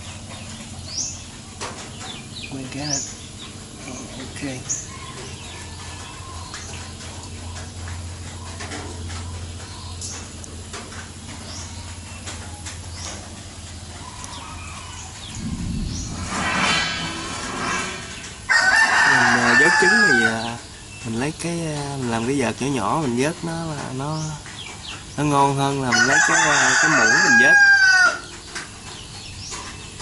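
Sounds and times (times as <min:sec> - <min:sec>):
rooster crowing: 0:18.5 - 0:20.5, 0:25.9 - 0:28.3.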